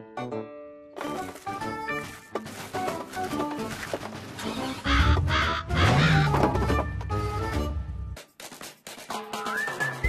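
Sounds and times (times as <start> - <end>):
cartoon bird squawking: 4.6 - 6.4.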